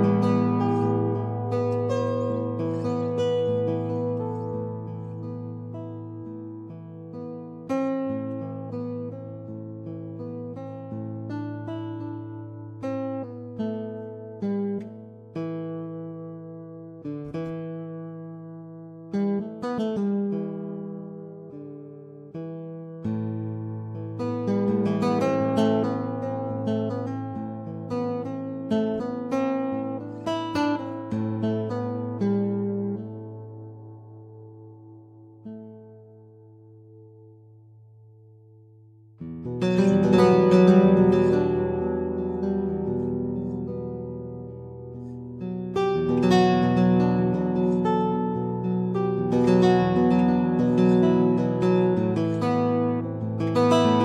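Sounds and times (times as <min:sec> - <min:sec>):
classical guitar notes and chords: 0:00.0 - 0:54.0.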